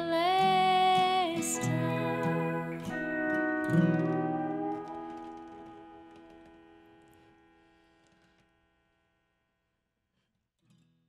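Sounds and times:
pedal steel and acoustic guitar chord: 0:00.5 - 0:08.2.

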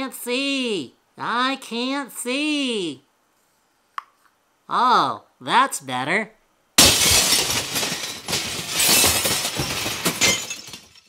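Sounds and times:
glass pieces clattering and tinkling: 0:06.8 - 0:11.0
glass smashing: 0:06.8 - 0:11.0.

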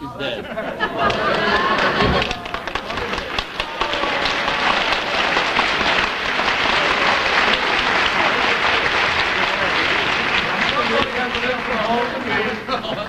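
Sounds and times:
audience applauding: 0:00.8 - 0:13.0.

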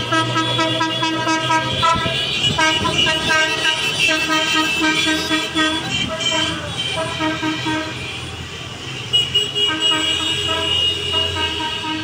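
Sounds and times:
car horns honking: 0:00.0 - 0:12.0.

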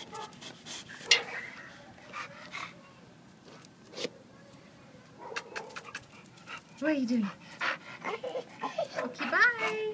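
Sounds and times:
dog barks: 0:05.2 - 0:05.9.

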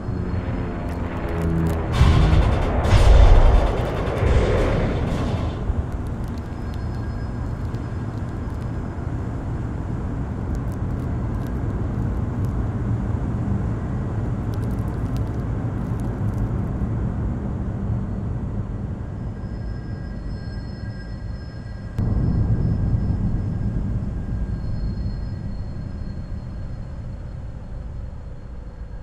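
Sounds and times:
low rumble: 0:00.0 - 0:29.0
faint high ringing tones: 0:02.9 - 0:12.5, 0:18.0 - 0:29.0
faint clicks: 0:05.1 - 0:08.8, 0:10.4 - 0:12.6, 0:14.4 - 0:16.7.

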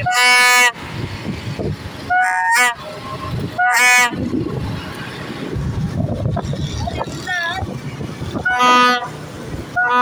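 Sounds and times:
traffic: 0:00.0 - 0:10.0
toy trumpet blasts: 0:08.4 - 0:09.1, 0:09.8 - 0:10.0.

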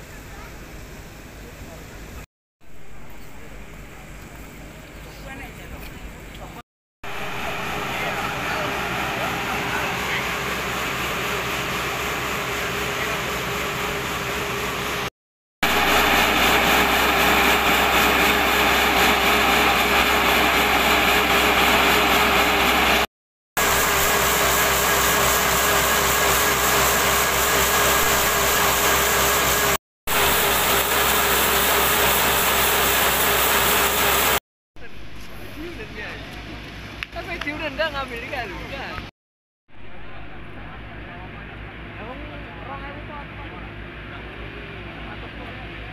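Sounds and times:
water pump engine running: 0:02.6 - 0:39.1, 0:39.7 - 0:45.9.

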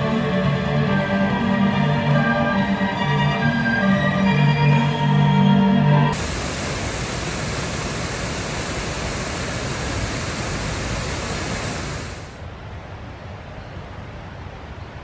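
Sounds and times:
string music: 0:00.0 - 0:06.1
faint outdoor ambience: 0:00.0 - 0:15.0
waterfall rushing: 0:06.1 - 0:12.4.

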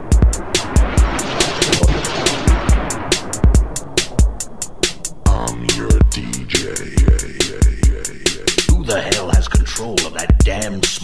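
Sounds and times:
drum machine beat: 0:00.0 - 0:11.0
hissing noise swell: 0:00.0 - 0:11.0.

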